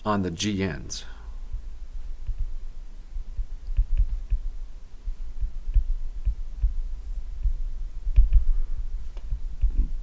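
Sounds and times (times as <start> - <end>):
stylus thumping on tablet: 3.4 - 4.5, 5.4 - 6.8, 7.4 - 8.5.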